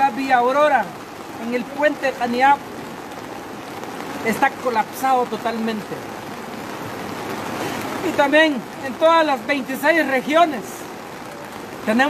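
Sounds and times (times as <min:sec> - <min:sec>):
rain pattering on umbrellas: 0:00.0 - 0:12.0.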